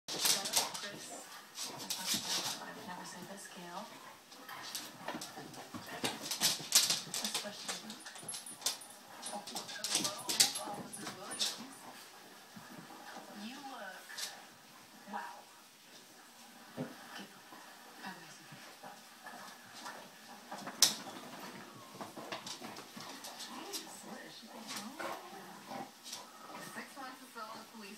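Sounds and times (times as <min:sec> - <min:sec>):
clicks and scuffles of tussling: 0:00.1 - 0:02.7, 0:04.6 - 0:11.7
dogs growling and whining: 0:18.9 - 0:26.9.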